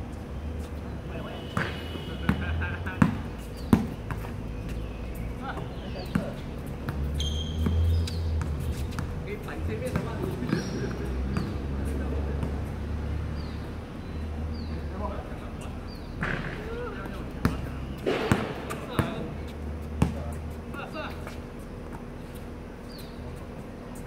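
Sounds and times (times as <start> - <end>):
basketball bouncing on court: 1.5 - 4.3, 6.0 - 11.6, 17.4 - 20.4.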